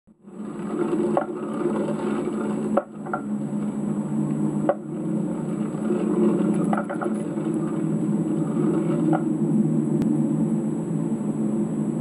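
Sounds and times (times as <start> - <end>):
skateboard wheels rolling on pavement: 0.1 - 11.9
wheels clicking over paving joints: 0.2 - 9.3.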